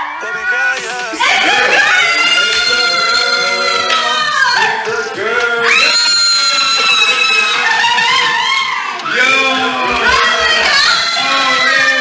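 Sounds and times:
voices in high held cries: 0.0s - 12.0s.

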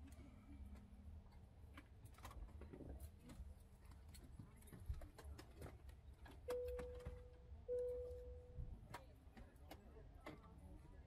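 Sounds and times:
airliner cabin chime: 6.5s - 8.6s.

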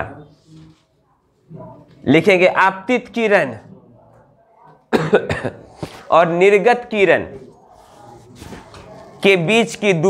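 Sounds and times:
man coughing: 4.9s - 5.8s.

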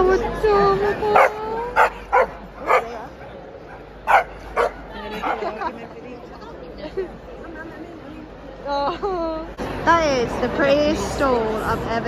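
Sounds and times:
crowd murmur: 0.0s - 12.0s
dog barking: 1.2s - 3.0s, 4.1s - 4.8s.

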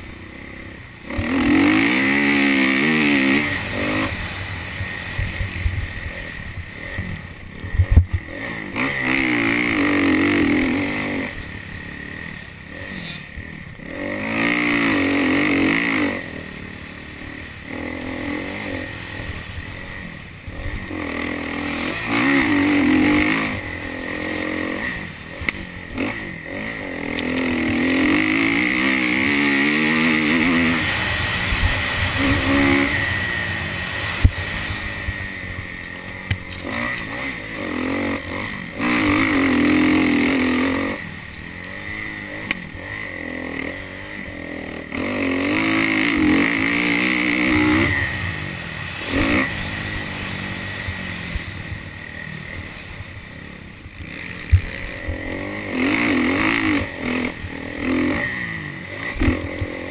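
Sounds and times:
motocross bike engine revving: 0.0s - 59.9s
wind: 0.0s - 59.9s.

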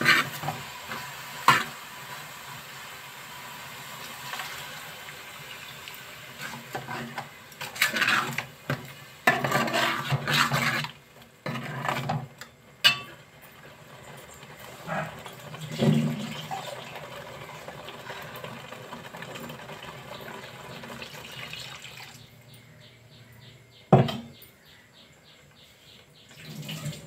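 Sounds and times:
ladle scraping steel pot: 0.0s - 1.8s, 6.4s - 12.3s.

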